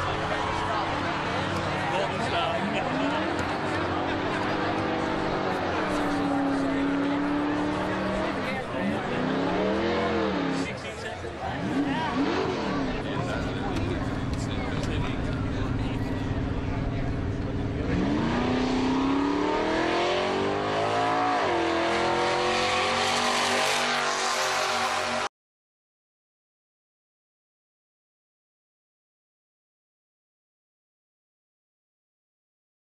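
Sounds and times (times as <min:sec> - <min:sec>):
drag car engine revving: 0:00.0 - 0:25.3.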